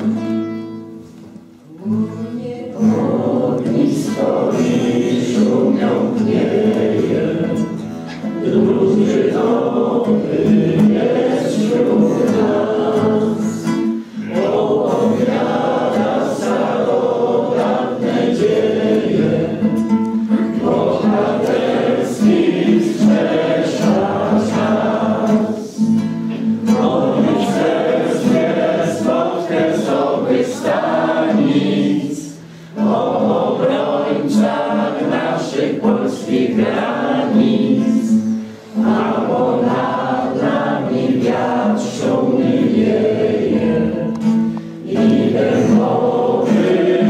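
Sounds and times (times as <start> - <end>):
acoustic guitar: 0.0 - 47.0
group singing together: 0.0 - 47.0.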